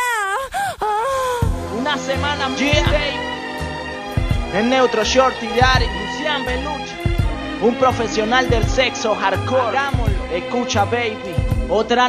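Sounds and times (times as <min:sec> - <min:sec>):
woman moaning vocal: 0:00.0 - 0:01.5
music beat with deep bass: 0:07.0 - 0:07.4, 0:08.4 - 0:08.9, 0:09.8 - 0:10.4.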